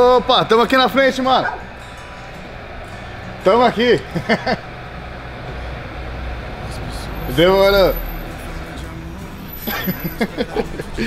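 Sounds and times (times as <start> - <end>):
low street rumble: 0.0 - 11.0
man laughing: 3.9 - 4.7, 9.5 - 11.0.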